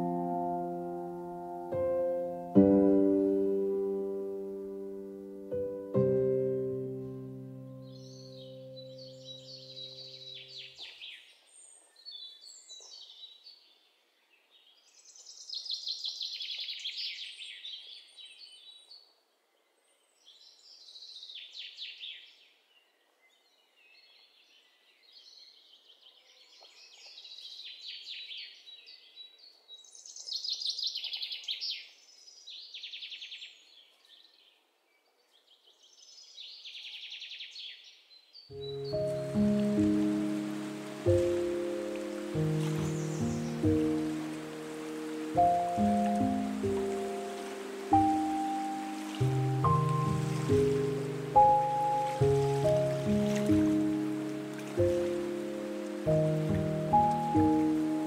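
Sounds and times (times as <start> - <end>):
background music: 0.0 - 9.9, 38.6 - 58.0
bird trilling song: 7.7 - 13.6, 35.2 - 58.0.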